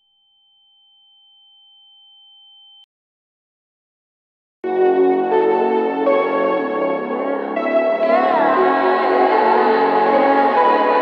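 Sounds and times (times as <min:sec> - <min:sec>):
two electronic sine tones: 0:01.1 - 0:02.9.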